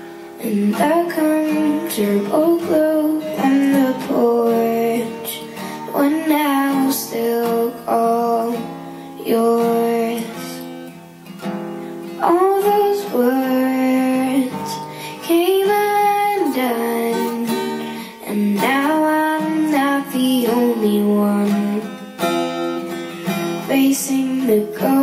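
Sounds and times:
girl singing: 0.0s - 10.9s, 12.0s - 22.0s, 23.3s - 25.0s
acoustic guitar strumming: 0.0s - 25.0s.

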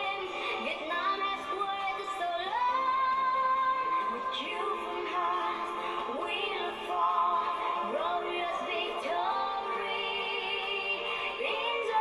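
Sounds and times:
woman singing: 0.0s - 12.0s.

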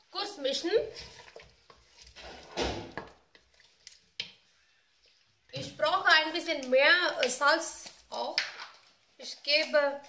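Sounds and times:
spoon scraping metal pot: 0.5s - 4.5s.

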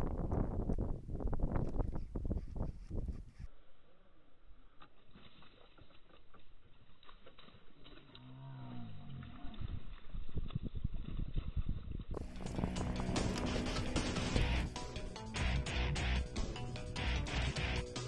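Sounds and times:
low moaning glide: 12.2s - 14.8s
background music: 12.2s - 18.0s.

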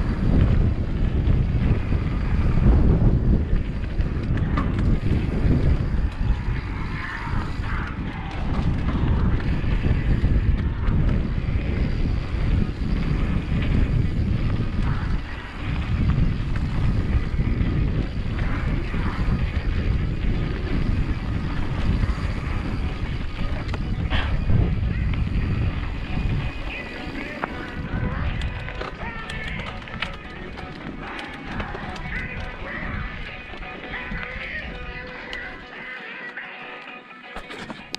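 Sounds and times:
wind buffeting microphone: 0.0s - 35.8s
bike tyres on dirt and gravel: 0.0s - 37.9s
background music: 25.9s - 37.9s.

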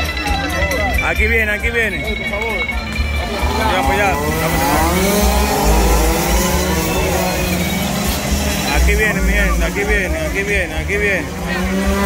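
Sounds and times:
voices: 0.0s - 12.0s
minibike engines buzzing at high revs: 1.0s - 12.0s.

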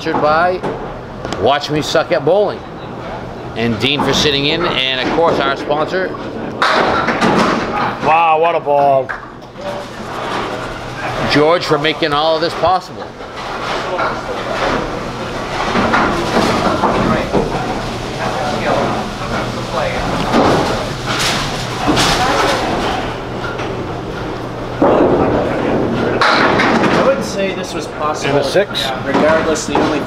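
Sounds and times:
bowling pins clattering: 0.0s - 30.0s
bowling ball rolling down lane: 9.0s - 27.3s.

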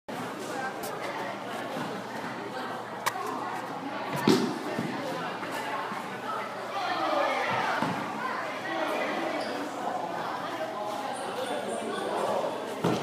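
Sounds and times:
boys' voices chattering: 0.1s - 13.0s.

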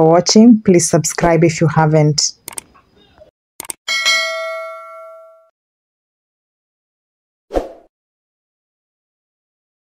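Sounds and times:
quick clicks: 2.4s - 2.8s, 3.6s - 3.8s
bell ding: 3.9s - 5.5s.

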